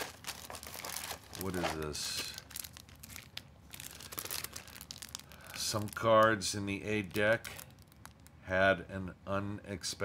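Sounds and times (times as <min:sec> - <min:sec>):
plastic packaging crinkling: 0:00.0 - 0:08.3.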